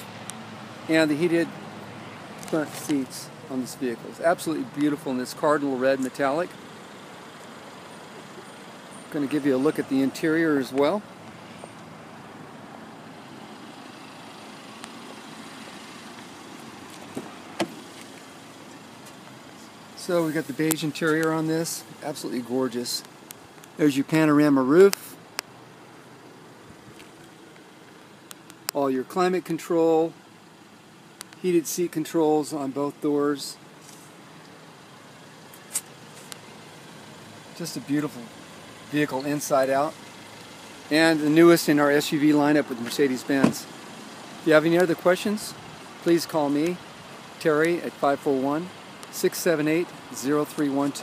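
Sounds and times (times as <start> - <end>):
outdoor background noise: 0.0 - 51.0
car door unlatching: 16.9 - 18.2
short hissing rustle: 33.8 - 34.2.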